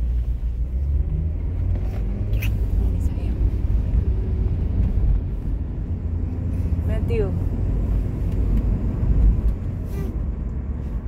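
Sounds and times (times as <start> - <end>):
car rumble inside cabin: 0.0 - 11.0.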